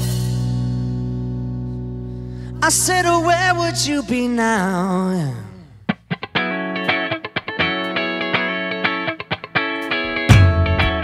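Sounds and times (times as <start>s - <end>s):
electric guitar and bass chord ringing: 0.0s - 3.9s, 6.4s - 11.0s.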